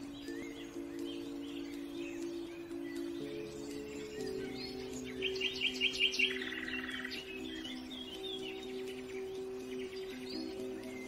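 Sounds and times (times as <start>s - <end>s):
birds chirping and trilling: 0.0s - 11.0s
slow reverb-heavy music chords: 0.0s - 11.0s.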